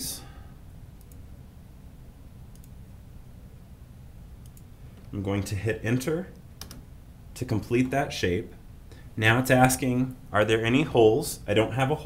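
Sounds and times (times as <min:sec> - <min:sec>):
low room hum: 0:00.0 - 0:12.0
computer mouse clicks: 0:01.0 - 0:01.3, 0:02.5 - 0:02.8, 0:04.4 - 0:05.1, 0:06.6 - 0:06.8.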